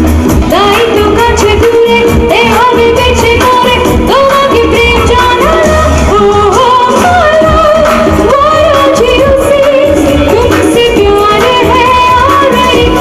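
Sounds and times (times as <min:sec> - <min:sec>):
person singing: 0:00.5 - 0:13.0.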